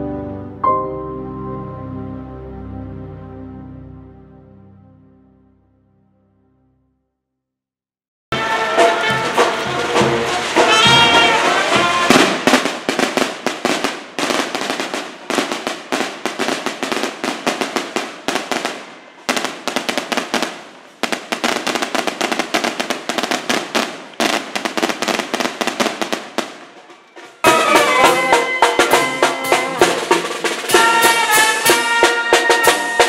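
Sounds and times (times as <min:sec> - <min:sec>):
brass band playing: 0:00.0 - 0:05.3, 0:08.3 - 0:12.9, 0:26.8 - 0:33.0
firecrackers crackling: 0:08.4 - 0:33.0.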